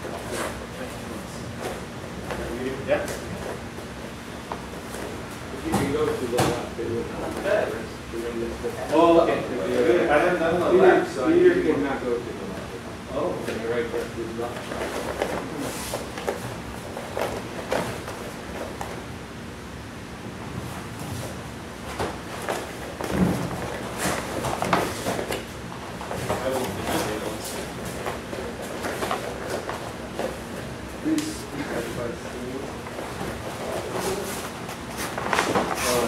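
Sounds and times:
feet and bodies thudding on mats: 0:14.6 - 0:19.0, 0:20.4 - 0:31.0.

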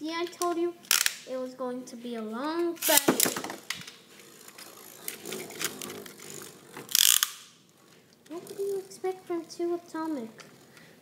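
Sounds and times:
spinning tops whirring: 0:02.8 - 0:11.0.

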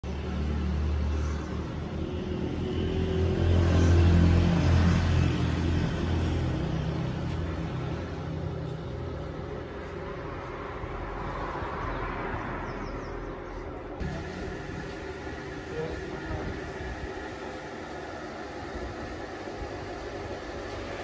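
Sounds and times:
low machine motor drone: 0:13.8 - 0:21.0.

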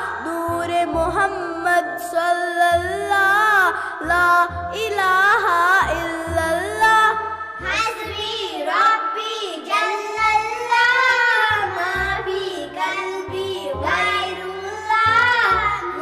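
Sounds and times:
high-pitched voice singing devotional song: 0:00.0 - 0:16.0.

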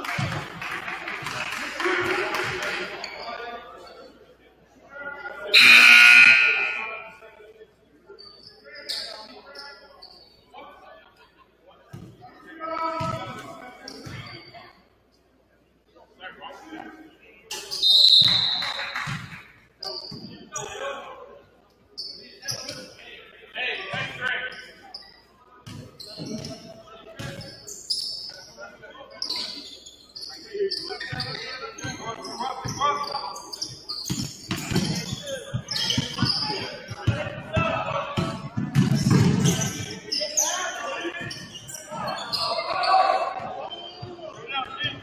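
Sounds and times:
scoreboard horn: 0:05.6 - 0:07.1
players shouting: 0:05.6 - 0:07.2
sneaker squeaks: 0:05.6 - 0:07.3, 0:08.2 - 0:10.4, 0:13.0 - 0:14.7, 0:17.5 - 0:20.8, 0:22.0 - 0:23.0, 0:24.0 - 0:28.6, 0:29.2 - 0:37.4, 0:38.2 - 0:45.0.

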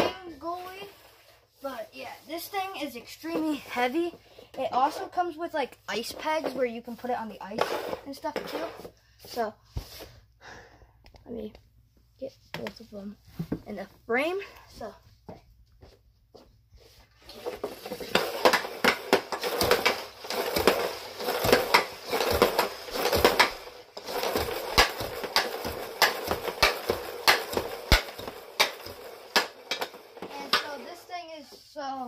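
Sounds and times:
puck scraping on plastic tiles: 0:05.9 - 0:10.1, 0:17.2 - 0:31.6
hockey stick tapping puck: 0:17.4 - 0:31.0.

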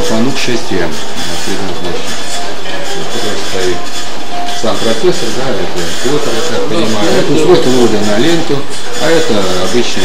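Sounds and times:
indistinct voices talking: 0:00.0 - 0:10.0.

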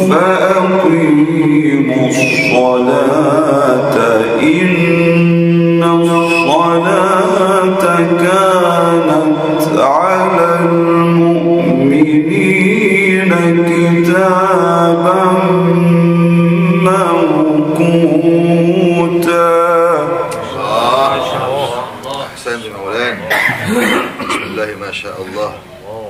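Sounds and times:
man chanting melodically: 0:00.0 - 0:26.0.

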